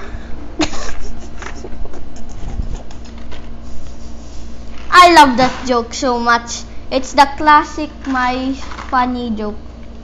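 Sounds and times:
boy laughing softly: 0:00.0 - 0:02.9
faint steady hum: 0:00.0 - 0:10.0
boy speaking: 0:04.9 - 0:09.6.

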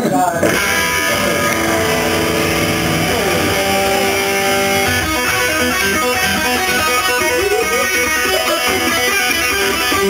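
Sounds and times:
distorted electric guitar: 0:00.3 - 0:10.0.

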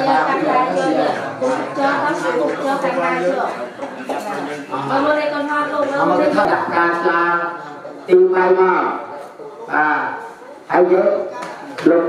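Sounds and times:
man chanting through a microphone: 0:06.0 - 0:12.0.

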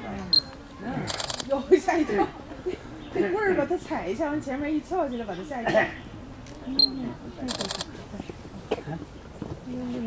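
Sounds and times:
faint background talk: 0:00.0 - 0:10.0
camera shutter clicks: 0:07.5 - 0:07.9.

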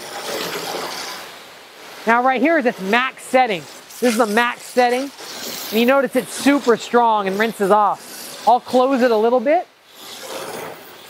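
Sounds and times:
water jet spraying against van: 0:00.0 - 0:11.0.

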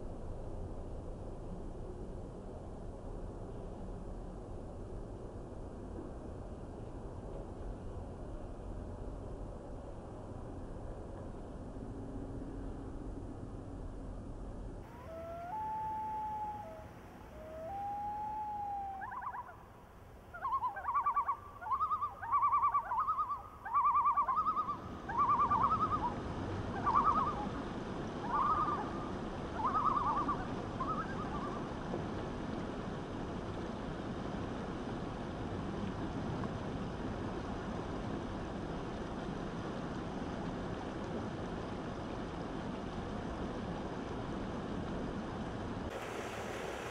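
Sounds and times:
bird calling: 0:14.8 - 0:27.5, 0:28.2 - 0:31.7
river water rushing over rocks: 0:45.9 - 0:46.9.

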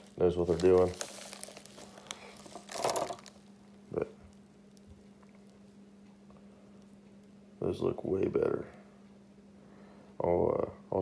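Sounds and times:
plastic packaging rustling: 0:00.0 - 0:03.6
faint steady hum: 0:00.0 - 0:11.0.

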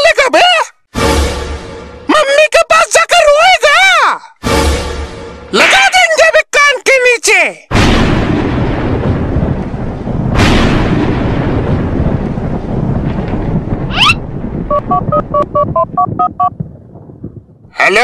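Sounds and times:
deep rumbling booms: 0:07.7 - 0:17.8
phone keypad beeps: 0:14.7 - 0:16.5.

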